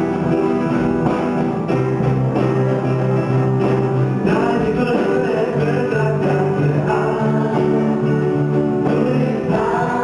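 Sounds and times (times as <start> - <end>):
instrumental accompaniment: 0.0 - 10.0
man singing into a microphone: 4.2 - 10.0
other voices singing: 4.2 - 10.0.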